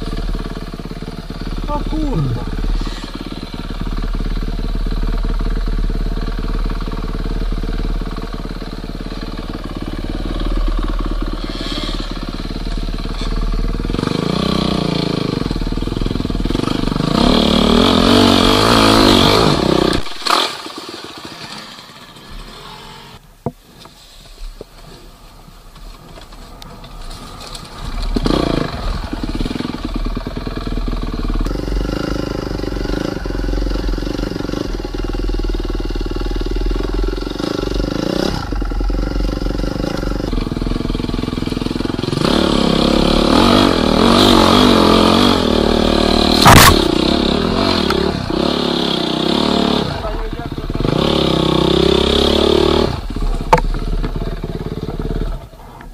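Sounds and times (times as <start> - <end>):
motorcycle engine revving: 0.0 - 23.2, 26.8 - 55.8
sharp knock: 46.4 - 47.1.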